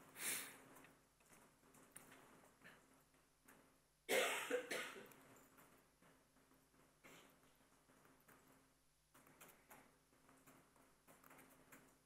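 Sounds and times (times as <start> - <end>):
person coughing: 4.1 - 5.1.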